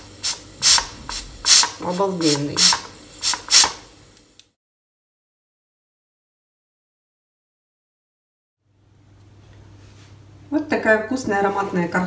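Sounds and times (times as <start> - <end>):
steam hissing from pressure cooker: 0.0 - 3.9.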